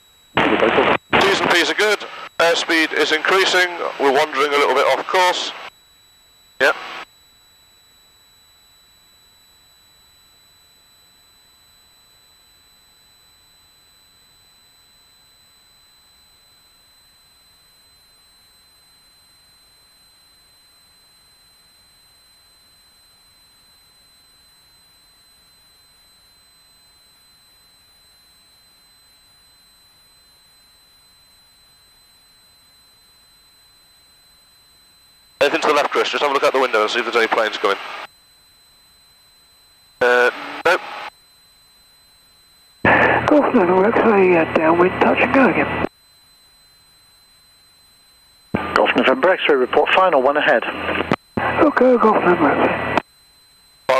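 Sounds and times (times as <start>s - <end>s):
constant high-pitched whine: 0.0s - 53.9s
person speaking on intercom: 1.2s - 5.6s, 35.4s - 37.8s, 51.5s - 52.7s.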